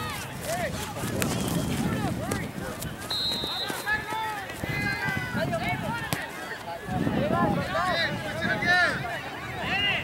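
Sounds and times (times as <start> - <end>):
players and spectators shouting: 0.0 - 10.0.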